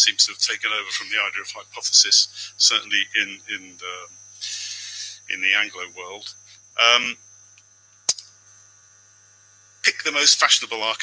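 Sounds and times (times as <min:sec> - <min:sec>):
electrical mains hum: 0:00.0 - 0:11.0
high whine from sound system: 0:00.0 - 0:11.0
sharp click: 0:07.5 - 0:08.4.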